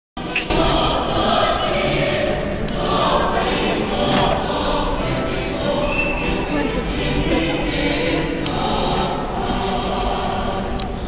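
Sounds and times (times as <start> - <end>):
choir singing: 0.2 - 11.0.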